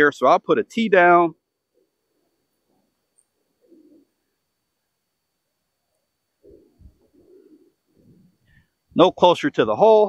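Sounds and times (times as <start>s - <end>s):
dove cooing: 3.4s - 4.3s, 6.3s - 8.6s.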